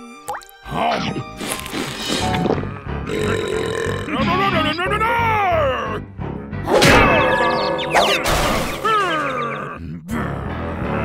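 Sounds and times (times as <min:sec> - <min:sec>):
cartoon voice growling: 0:08.0 - 0:10.6.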